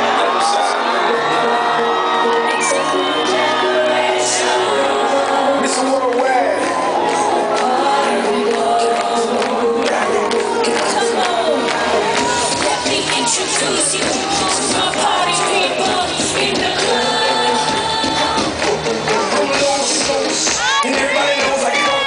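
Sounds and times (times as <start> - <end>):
audience cheering and whooping: 0.0 - 8.2, 8.8 - 22.0
live pop concert music: 0.0 - 22.0.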